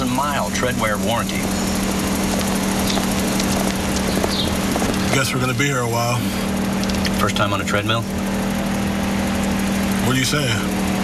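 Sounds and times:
engine and tyres droning on treadmill: 0.0s - 11.0s.

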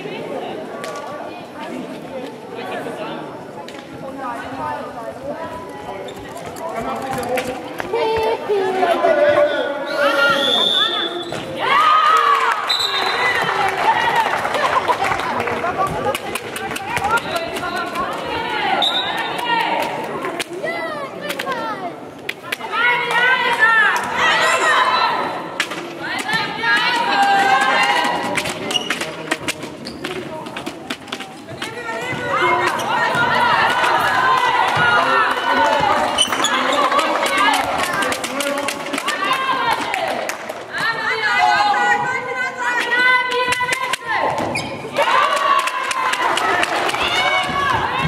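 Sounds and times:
voices of players and spectators: 0.0s - 48.0s.

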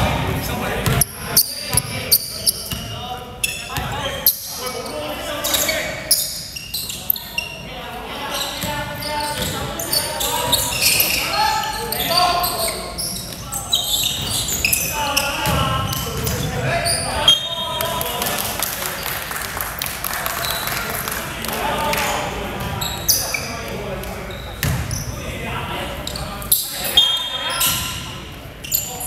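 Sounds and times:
players calling out: 0.0s - 19.2s
basketball bouncing on wooden floor: 24.6s - 24.9s.

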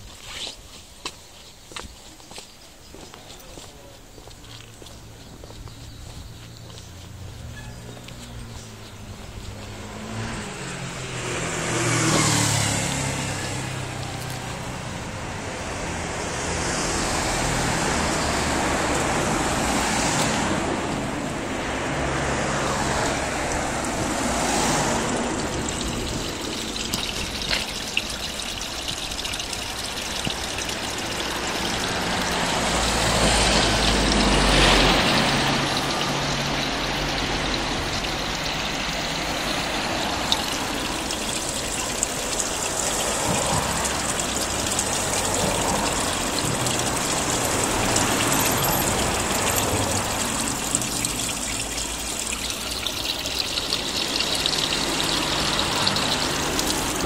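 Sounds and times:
road traffic noise: 0.0s - 57.0s
cars driving past: 3.4s - 57.0s.

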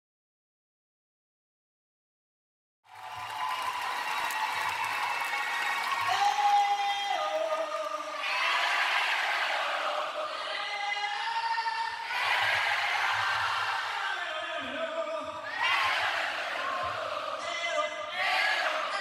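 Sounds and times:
crowd singing and cheering: 2.9s - 19.0s
male singer holding notes: 6.1s - 8.2s, 14.1s - 15.5s, 17.4s - 19.0s.

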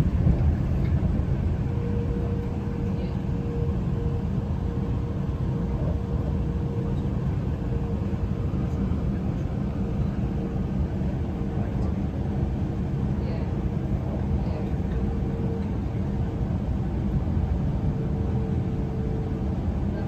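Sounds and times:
train rumbling on track: 0.0s - 20.0s.

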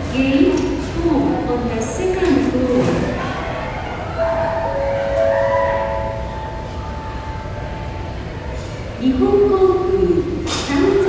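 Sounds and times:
terminal hall hum: 0.0s - 11.0s
public address chime: 4.0s - 7.8s.

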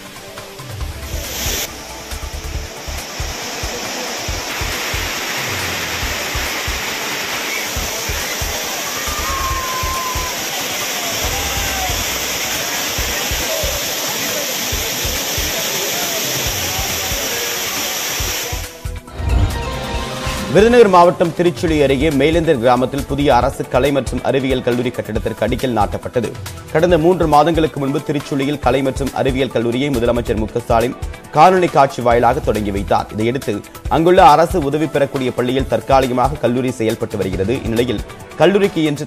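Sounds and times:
waterfall rushing: 0.0s - 21.4s.

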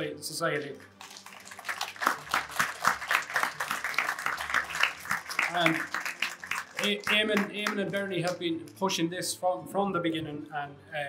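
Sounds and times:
crowd applauding: 0.8s - 8.4s.

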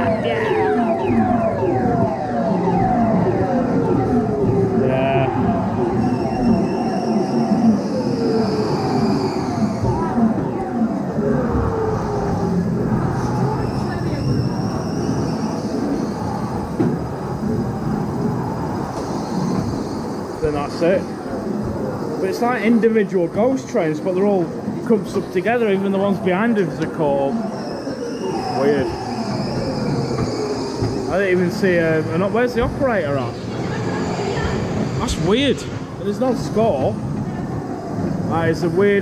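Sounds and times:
ride car rumbling on track: 0.0s - 39.0s.

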